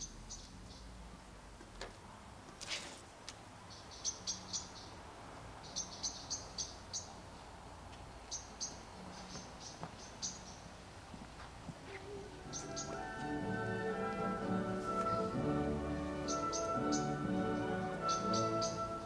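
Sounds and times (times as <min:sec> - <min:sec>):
small bird chirping: 0:00.0 - 0:01.0, 0:03.6 - 0:05.0, 0:05.6 - 0:07.5, 0:08.2 - 0:10.8, 0:11.9 - 0:13.1, 0:16.2 - 0:17.2, 0:18.0 - 0:18.9
faint background noise: 0:00.0 - 0:19.0.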